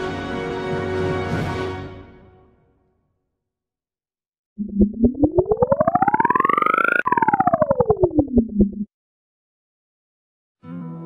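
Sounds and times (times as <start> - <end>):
pulsing electronic siren tone: 4.6 - 8.9.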